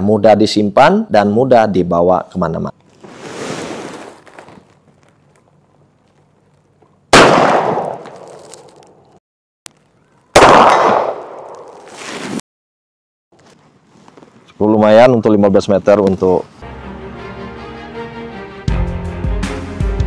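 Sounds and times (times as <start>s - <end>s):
revolver shots with echo: 7.2s - 8.0s, 10.4s - 11.5s.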